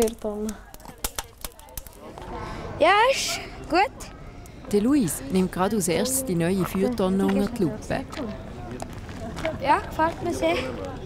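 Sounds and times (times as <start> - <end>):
fire sharp snaps: 0.0 - 2.2
wood fire crackling: 0.0 - 2.3.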